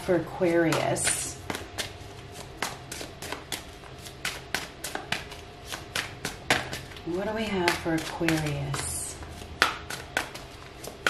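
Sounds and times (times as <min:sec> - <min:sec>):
cards shuffled by hand: 0:01.0 - 0:07.1.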